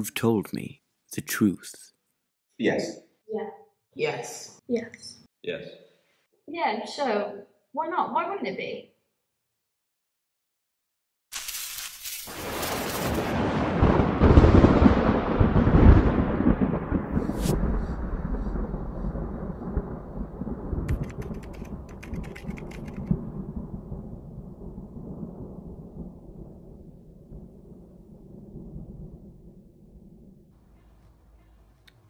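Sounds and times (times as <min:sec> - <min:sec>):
crackling: 0:11.3 - 0:13.5
thunder crack and rumble: 0:12.3 - 0:31.1.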